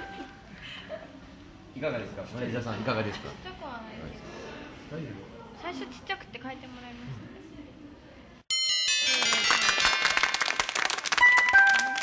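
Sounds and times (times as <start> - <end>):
bell-like chime: 8.5 - 12.0
upbeat music with fast beat: 8.5 - 12.0.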